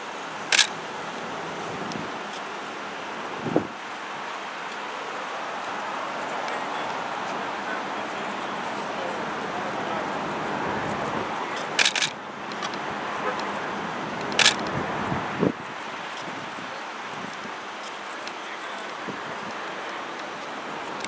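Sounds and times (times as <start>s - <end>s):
street traffic noise: 0.0s - 21.0s
camera shutter clicks: 0.5s - 0.8s, 11.8s - 12.7s, 14.3s - 14.7s.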